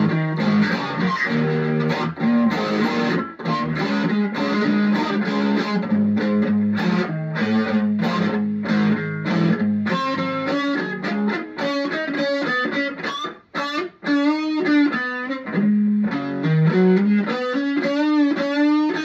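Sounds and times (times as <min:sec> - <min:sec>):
electric guitar: 0:00.0 - 0:19.0
recorded band music: 0:00.0 - 0:19.0.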